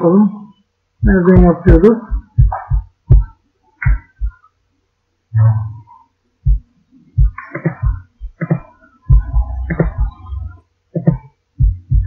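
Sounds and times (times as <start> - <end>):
dull low thumps and knocks: 1.0 - 4.4, 6.5 - 8.4, 9.1 - 10.4, 11.1 - 12.0
low hum: 5.3 - 12.0.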